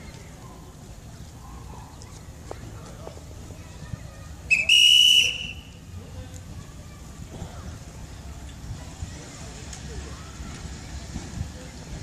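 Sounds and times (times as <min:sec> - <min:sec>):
locomotive whistle: 0:04.5 - 0:05.8.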